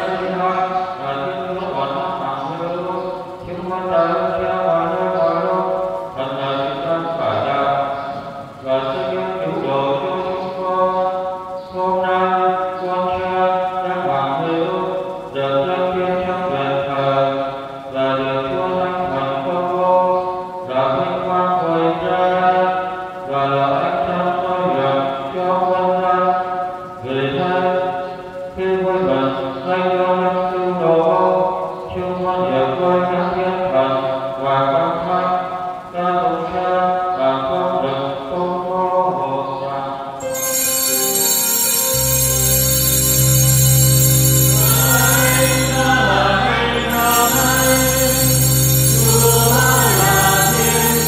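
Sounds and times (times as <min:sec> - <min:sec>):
man chanting: 0:00.0 - 0:40.3, 0:44.5 - 0:51.0.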